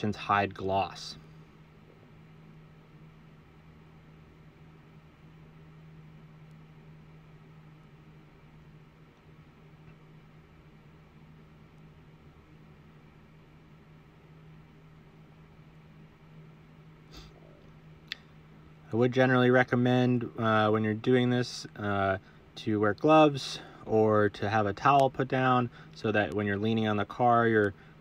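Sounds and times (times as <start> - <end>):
low hum: 0.0 - 28.0.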